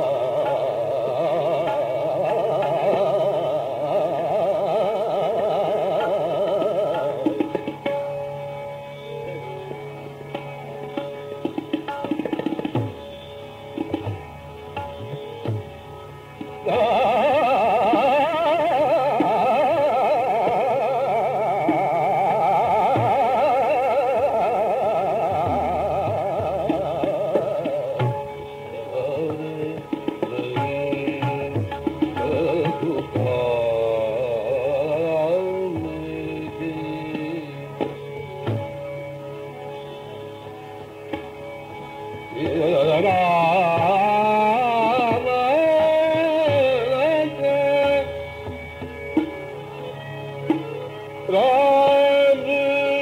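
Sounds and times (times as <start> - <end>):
man singing classical vocal: 0.0 - 9.5, 16.6 - 39.1, 42.2 - 49.1, 49.7 - 53.0.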